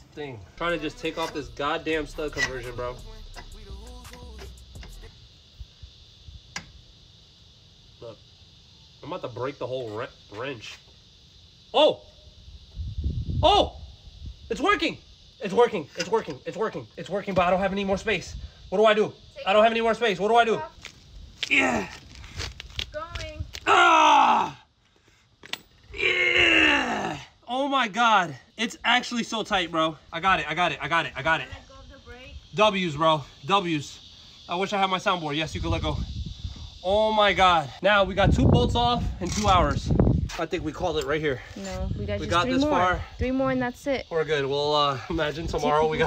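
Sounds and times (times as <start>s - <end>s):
man groaning with effort: 26.0s - 27.3s.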